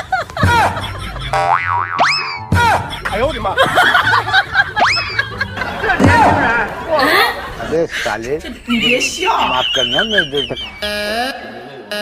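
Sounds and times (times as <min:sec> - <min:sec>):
springy boing sound effects: 0:01.3 - 0:02.6
rising whistle: 0:08.9 - 0:11.3.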